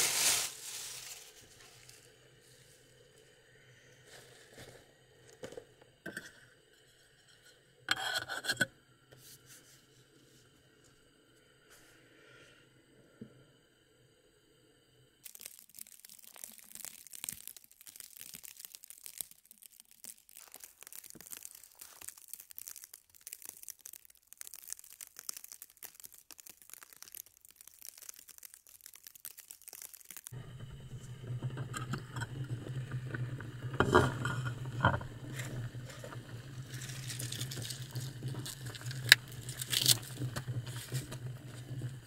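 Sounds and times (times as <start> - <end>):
snow crunching: 0.0 - 1.9, 20.4 - 22.4, 35.2 - 41.7.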